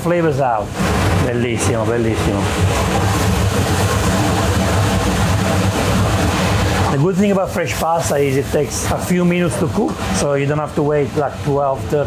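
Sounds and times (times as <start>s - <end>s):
pasta cooker boiling: 0.0s - 12.0s.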